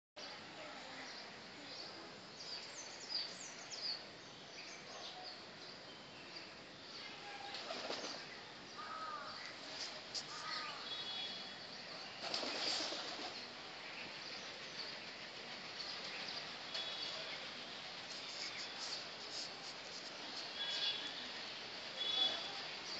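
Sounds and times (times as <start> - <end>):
steady background hiss: 0.2 - 22.9
wing flapping: 7.4 - 8.3, 12.2 - 13.4.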